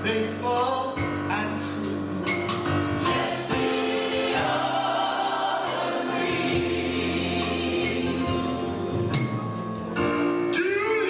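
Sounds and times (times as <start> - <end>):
drums: 0.0 - 11.0
keyboard: 0.0 - 11.0
voices singing: 3.0 - 8.9.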